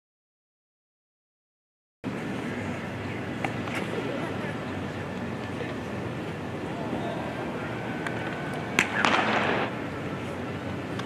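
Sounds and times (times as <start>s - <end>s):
stadium crowd murmur: 2.1s - 11.0s.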